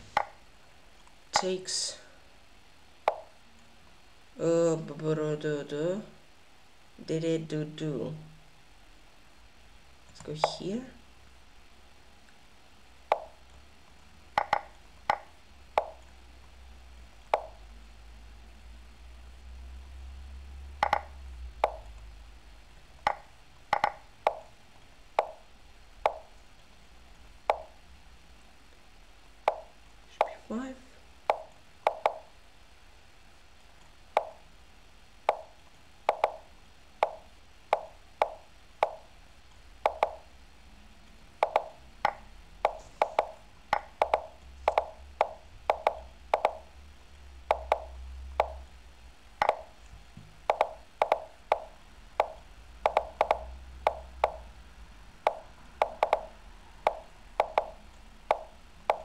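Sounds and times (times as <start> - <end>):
chess move wooden plops: 10.2 - 10.7, 14.4 - 16.0, 17.3 - 17.6, 20.8 - 22.0, 23.0 - 24.5, 25.2 - 25.4, 26.0 - 26.4, 27.5 - 27.8, 29.5 - 30.5, 31.3 - 32.3, 34.2 - 34.4, 35.3 - 39.1, 39.8 - 40.3, 41.4 - 46.7, 47.5 - 48.7, 49.4 - 54.5, 55.2 - 59.0.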